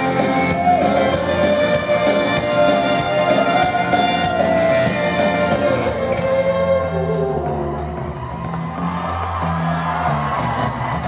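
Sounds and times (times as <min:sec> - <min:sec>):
crowd cheering: 0:00.0 - 0:11.0
live rock band with violin: 0:00.0 - 0:11.0.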